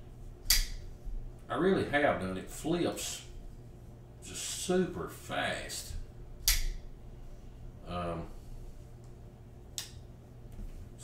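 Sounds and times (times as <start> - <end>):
folding knife blade clicking into lock: 6.4 - 6.8.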